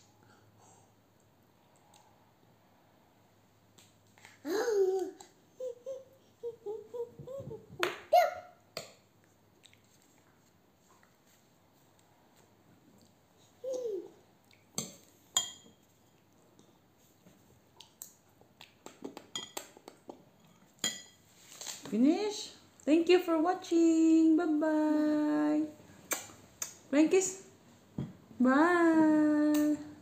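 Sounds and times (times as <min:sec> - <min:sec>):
toddler humming: 0:04.4 - 0:07.8
spoon clinking against bowl: 0:14.8 - 0:15.8, 0:19.3 - 0:19.6.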